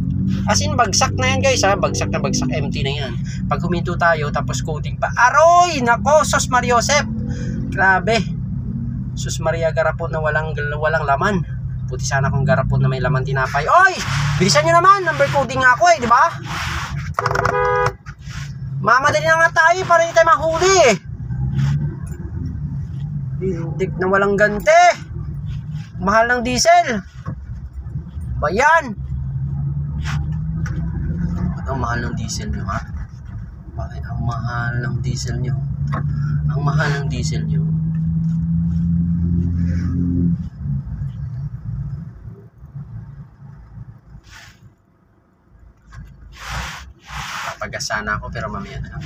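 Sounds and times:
engine and road hum in cabin: 0:00.0 - 0:49.0.

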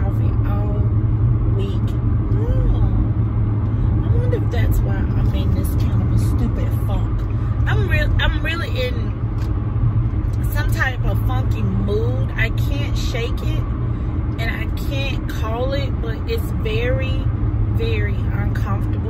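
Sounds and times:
woman's voice: 0:00.0 - 0:03.2, 0:04.0 - 0:09.2, 0:10.4 - 0:13.6, 0:14.4 - 0:19.0
car road and engine rumble: 0:00.0 - 0:19.0.

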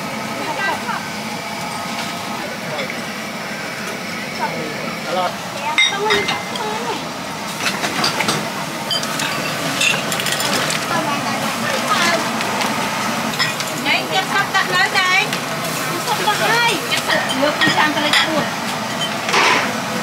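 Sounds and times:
stock pots boiling: 0:00.0 - 0:20.0.

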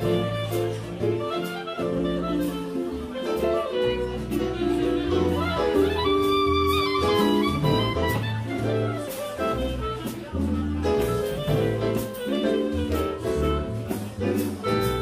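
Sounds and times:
guitar: 0:00.0 - 0:15.0
light drums: 0:00.0 - 0:15.0
saxophone melody: 0:00.0 - 0:15.0
walking bass line: 0:00.0 - 0:15.0.

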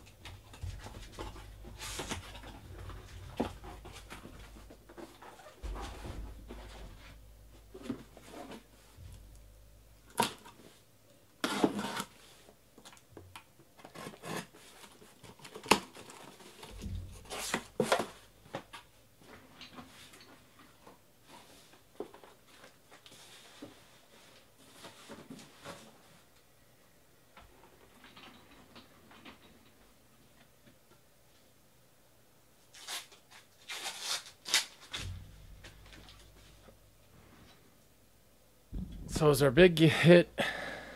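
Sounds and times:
cardboard and plastic wrap rustling: 0:00.2 - 0:09.3, 0:13.8 - 0:18.8.

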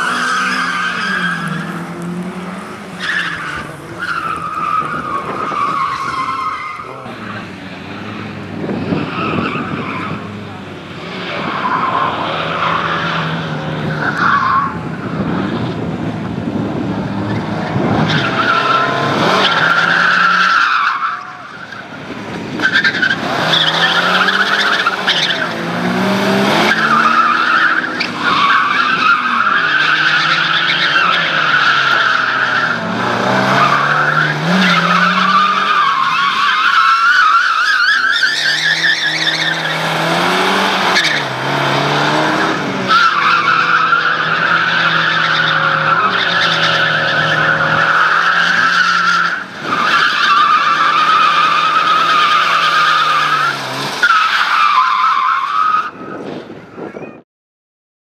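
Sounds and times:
tyres squealing on tarmac: 0:00.0 - 0:02.0, 0:02.7 - 0:08.1, 0:08.8 - 0:15.5, 0:18.0 - 0:56.2
car engine revving: 0:22.2 - 0:36.9, 0:37.8 - 0:54.0.

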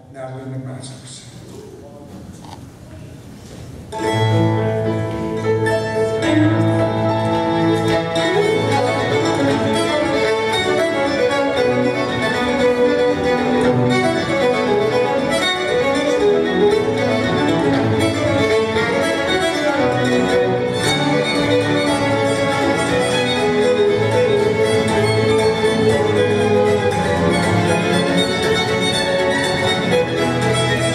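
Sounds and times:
piano accompaniment: 0:03.9 - 0:30.9
fiddle playing fast tune: 0:04.0 - 0:30.9.

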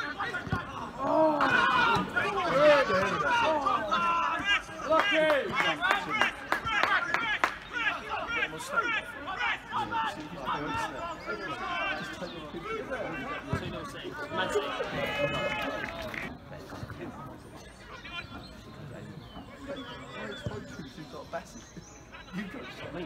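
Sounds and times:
voices talking and shouting: 0:00.0 - 0:23.0.

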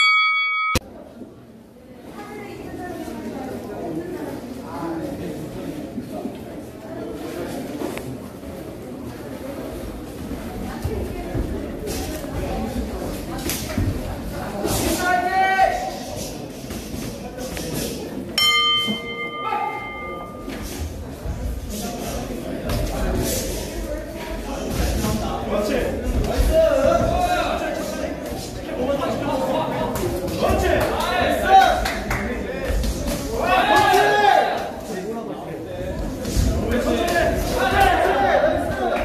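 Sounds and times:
boxing ring bell clang: 0:00.0 - 0:00.9, 0:18.4 - 0:20.5
faint hall noise: 0:00.0 - 0:39.0.

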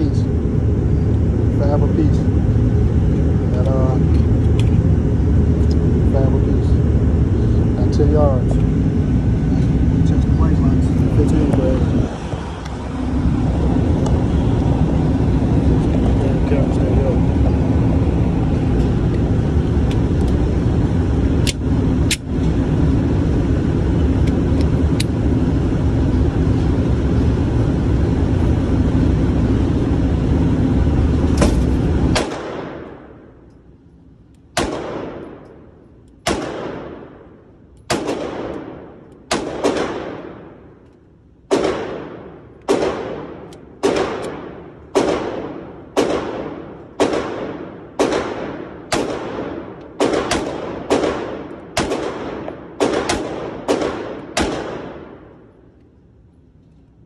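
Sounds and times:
loud steady rumbling: 0:00.0 - 0:57.0
pistol shots echoing indoors: 0:34.6 - 0:35.5, 0:36.2 - 0:37.2, 0:37.9 - 0:40.6, 0:41.5 - 0:55.3.

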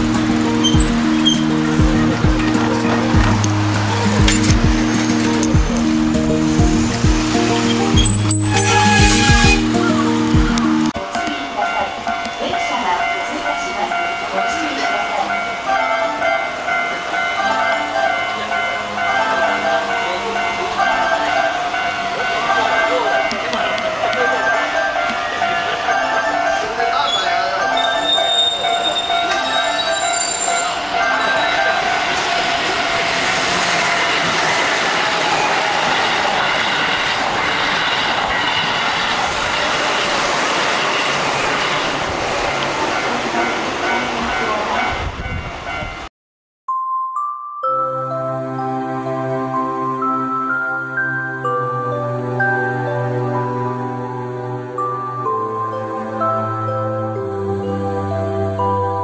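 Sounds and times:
electric train running: 0:00.0 - 0:12.0, 0:16.5 - 0:44.8
train wheel squeal: 0:00.6 - 0:01.5, 0:07.6 - 0:10.0, 0:26.9 - 0:43.5
level crossing alarm ringing: 0:11.0 - 0:45.0.

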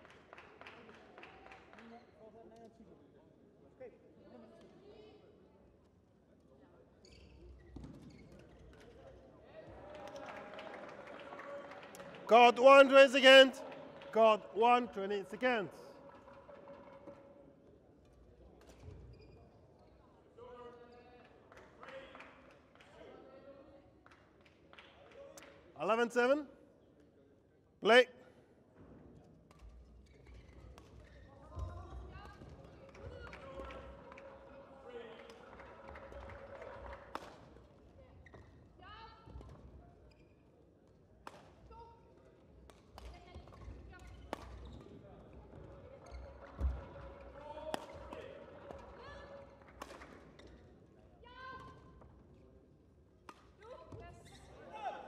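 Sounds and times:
rackets hitting shuttlecock: 0:47.7 - 0:48.2.

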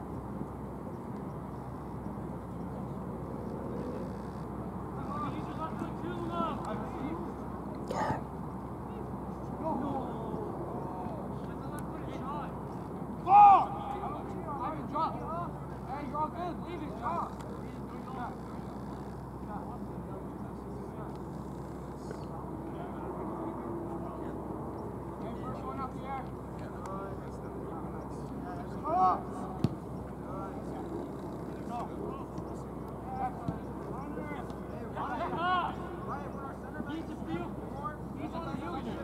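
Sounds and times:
steady background noise: 0:00.0 - 0:39.0
young men calling out: 0:05.0 - 0:07.2, 0:07.8 - 0:18.3, 0:28.4 - 0:29.6, 0:33.0 - 0:39.0
loud short shout: 0:13.2 - 0:13.9.

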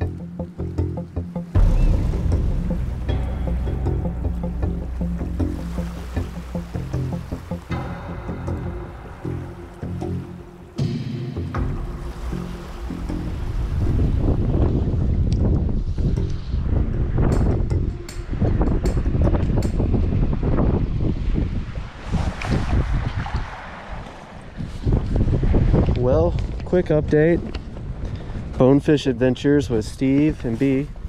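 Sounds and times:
wading through shallow water: 0:00.0 - 0:16.0, 0:21.8 - 0:25.7
music: 0:00.0 - 0:21.2
wind buffeting microphone: 0:00.0 - 0:31.0.

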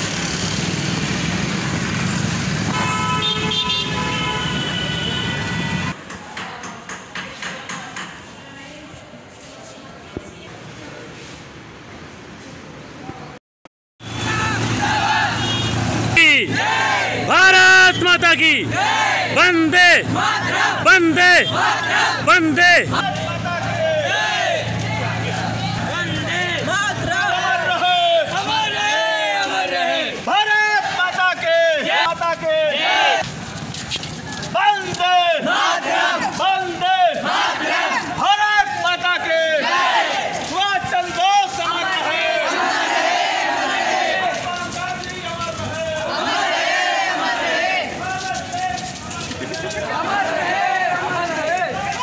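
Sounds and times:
traffic hum: 0:00.0 - 0:13.4, 0:14.0 - 0:52.0
boys shouting slogans: 0:14.2 - 0:33.2, 0:34.5 - 0:52.0
crowd chanting: 0:14.2 - 0:33.2, 0:35.1 - 0:44.6, 0:45.7 - 0:48.4, 0:49.5 - 0:52.0
man shouting: 0:16.1 - 0:18.7, 0:19.3 - 0:20.1, 0:20.8 - 0:24.0, 0:30.3 - 0:33.2
people talking: 0:16.2 - 0:16.7, 0:17.3 - 0:18.8, 0:19.4 - 0:24.2, 0:24.9 - 0:33.0, 0:44.2 - 0:46.4, 0:47.2 - 0:52.0.

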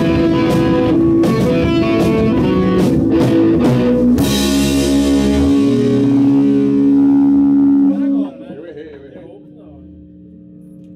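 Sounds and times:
electric guitar and bass chord: 0:00.0 - 0:10.9.

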